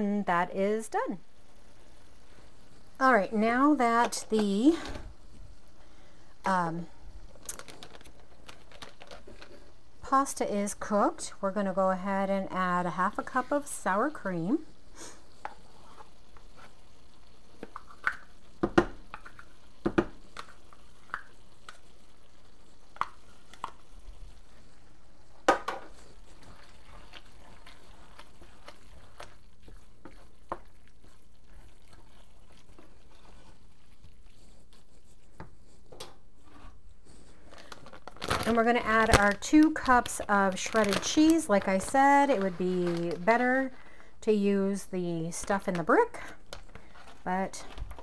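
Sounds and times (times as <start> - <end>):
food squishing while stirred: 1.3 - 10.1, 13.0 - 43.8, 45.8 - 48.0.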